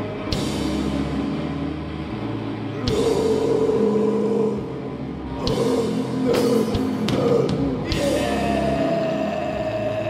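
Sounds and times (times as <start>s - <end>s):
live heavy metal band: 0.0s - 10.0s.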